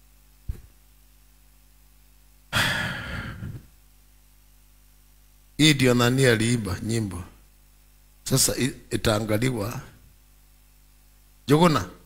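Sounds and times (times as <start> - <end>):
person sighing: 2.5 - 3.7.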